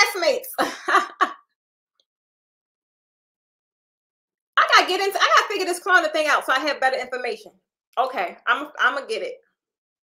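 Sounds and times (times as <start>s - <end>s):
woman laughing: 0.4s - 1.5s.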